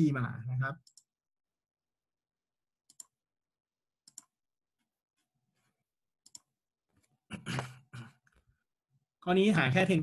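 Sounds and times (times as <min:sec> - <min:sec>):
computer mouse double click: 0:02.9 - 0:03.1, 0:06.2 - 0:06.5.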